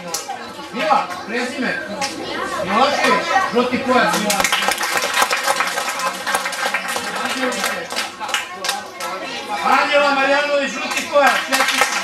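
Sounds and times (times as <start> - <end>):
chatter of voices in a hall: 0.0 - 12.0
sharp claps: 4.1 - 9.1, 10.9 - 12.0.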